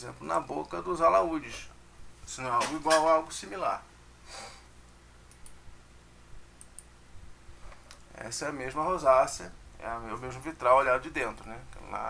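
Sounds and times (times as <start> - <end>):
short breath: 4.2 - 4.7
faint small clicks: 5.2 - 5.6, 6.6 - 6.9.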